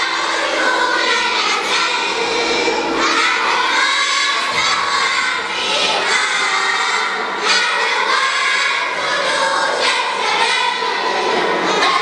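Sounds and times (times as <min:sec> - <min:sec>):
girls choir singing loudly: 0:00.0 - 0:12.0.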